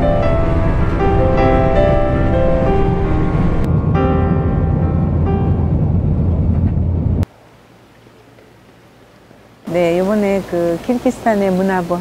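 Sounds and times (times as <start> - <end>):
jet engine cabin rumble: 0.0 - 7.3.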